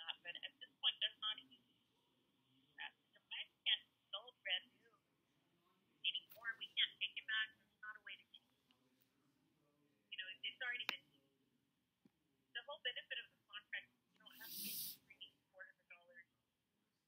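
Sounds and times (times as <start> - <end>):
person speaking over a phone: 6.1 - 8.6, 12.6 - 16.2.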